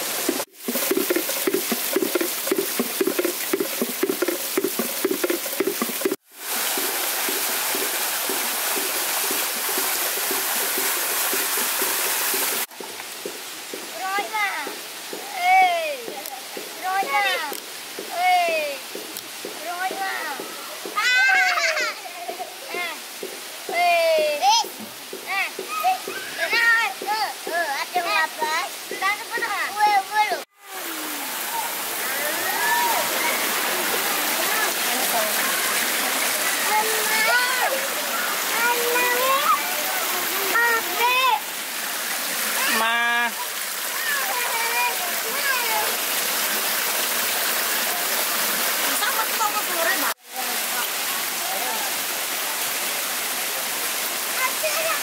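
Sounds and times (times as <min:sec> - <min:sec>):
water pouring into a pool: 0:00.0 - 0:13.7, 0:30.5 - 0:55.0
children's voices at play: 0:19.6 - 0:23.1, 0:23.7 - 0:41.5, 0:42.5 - 0:46.0, 0:54.3 - 0:55.0
voices: 0:23.7 - 0:41.6.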